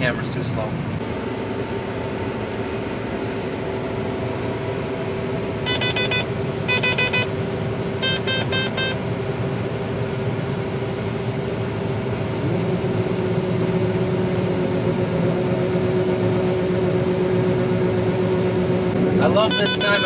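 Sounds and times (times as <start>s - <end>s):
combine harvester drone: 0.0s - 20.0s
rapid electronic alarm beeping: 5.7s - 7.3s, 8.0s - 9.0s, 19.4s - 20.0s.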